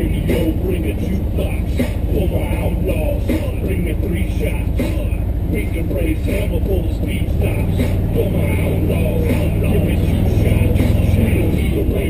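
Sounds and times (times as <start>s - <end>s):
engines idling with low drone: 0.0s - 12.0s.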